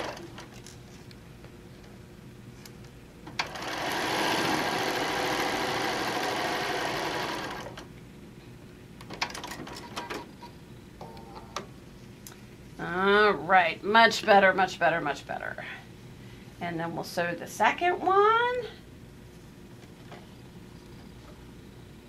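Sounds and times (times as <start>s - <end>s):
sewing machine stitching: 3.4s - 7.8s.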